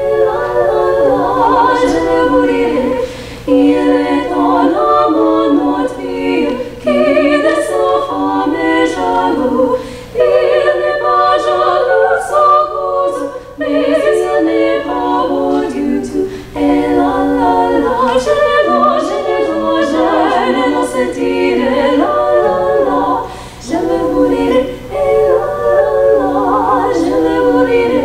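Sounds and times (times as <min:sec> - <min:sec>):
female vocal trio singing a cappella: 0:00.0 - 0:28.0.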